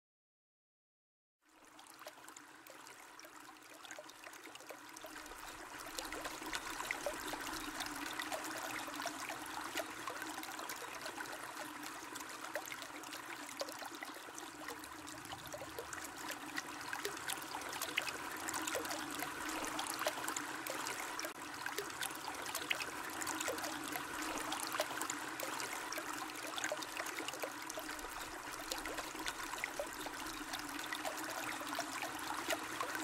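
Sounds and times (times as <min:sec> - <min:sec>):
running water trickling: 0:01.5 - 0:33.0.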